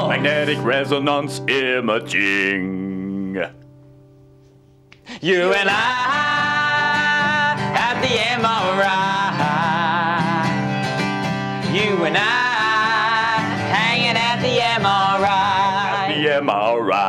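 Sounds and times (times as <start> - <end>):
man and woman singing: 0.0 - 3.4, 5.1 - 10.8, 11.6 - 17.0
acoustic guitar strumming: 0.0 - 17.0.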